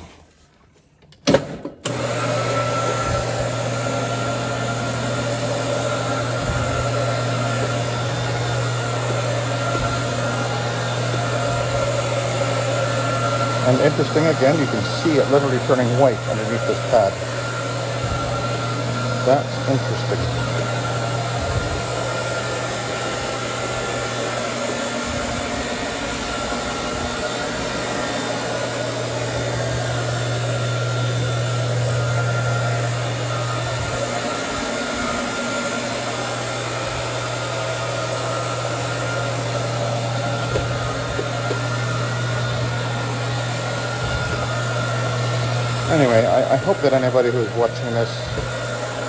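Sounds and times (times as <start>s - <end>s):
rotary floor machine motor hum: 1.3s - 49.0s.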